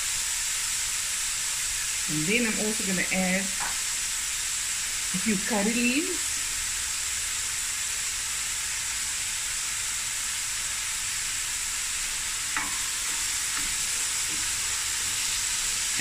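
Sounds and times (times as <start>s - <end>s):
onions sizzling in oil: 0.0s - 16.0s.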